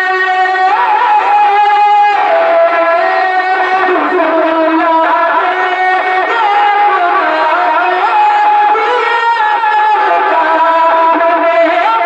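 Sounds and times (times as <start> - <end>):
man singing into microphone: 0.0 - 12.0.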